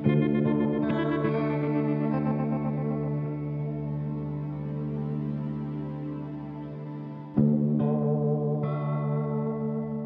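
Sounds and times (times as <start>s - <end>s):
guitar chords with chorus effect: 0.0s - 10.0s.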